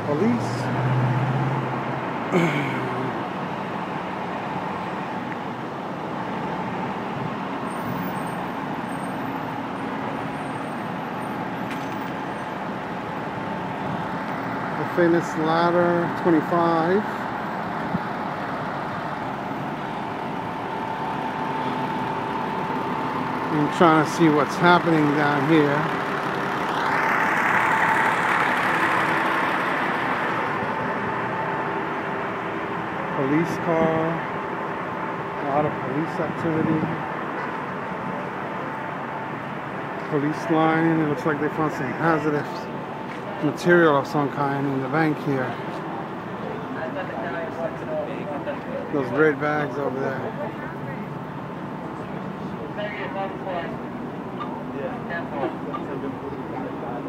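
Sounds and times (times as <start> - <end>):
heavy truck engines humming: 0.0 - 57.0
street traffic: 0.0 - 57.0
fire truck engine idling: 8.8 - 36.0.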